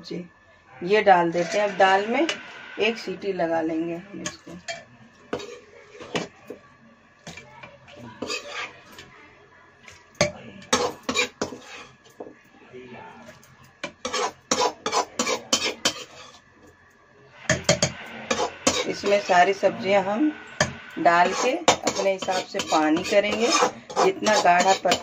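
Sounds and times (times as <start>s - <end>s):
metal utensils clinking and scraping pots: 1.3s - 2.4s, 4.2s - 6.4s, 7.3s - 7.5s, 8.1s - 9.1s, 9.9s - 12.2s, 13.3s - 16.4s, 17.5s - 19.6s, 20.6s - 25.0s.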